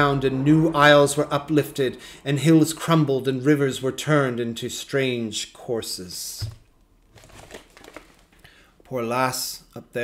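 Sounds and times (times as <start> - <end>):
book handling noises: 6.4 - 8.4
paper rustling: 6.4 - 8.4.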